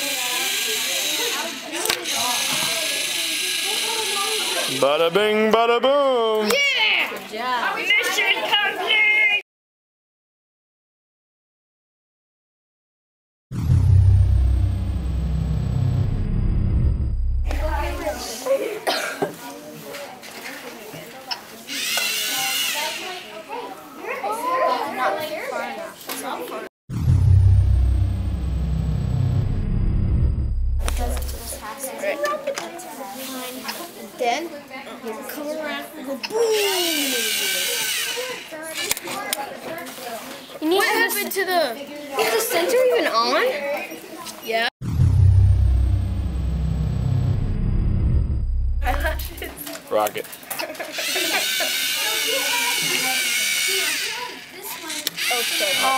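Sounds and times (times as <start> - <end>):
children chattering: 0.0 - 4.8, 6.7 - 9.4, 17.6 - 26.7, 31.6 - 44.6, 49.3 - 55.9
deep rumble: 13.5 - 18.3, 26.9 - 31.6, 44.8 - 49.6.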